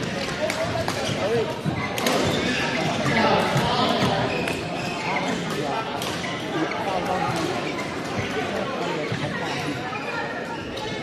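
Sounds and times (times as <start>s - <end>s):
echoing chatter of voices: 0.0s - 11.0s.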